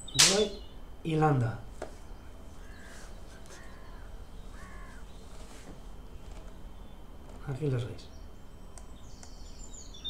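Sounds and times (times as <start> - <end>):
harsh bird calls: 0.0 - 0.9, 2.0 - 7.2
low steady hum: 0.0 - 10.0.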